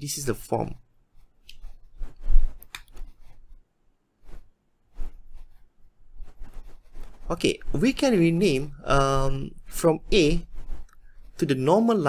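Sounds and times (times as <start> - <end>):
rustling and scraping: 1.1 - 12.0.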